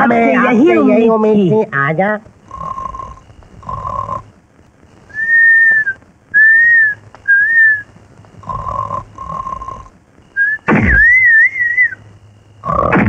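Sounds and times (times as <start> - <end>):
rasping snore: 2.5 - 4.2, 8.4 - 9.9
high whistled breaths: 5.1 - 7.8, 9.2 - 12.0.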